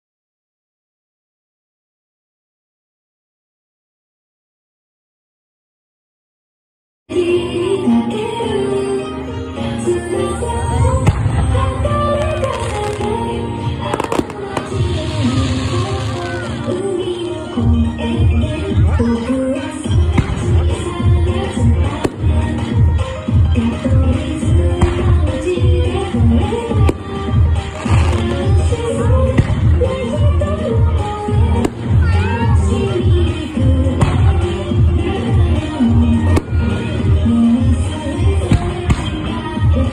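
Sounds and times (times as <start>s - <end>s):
music: 7.1s - 39.9s
fireworks bangs and crackles: 10.8s - 17.0s, 19.8s - 39.9s.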